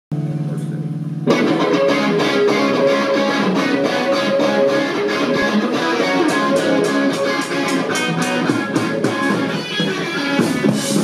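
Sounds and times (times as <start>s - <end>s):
electric guitar and bass: 0.1s - 11.0s
electric guitar chord ringing: 0.2s - 11.0s
drums and cymbals: 6.2s - 11.0s.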